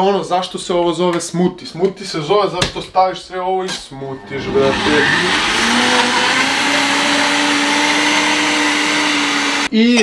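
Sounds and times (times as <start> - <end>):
blender running: 4.2 - 9.7.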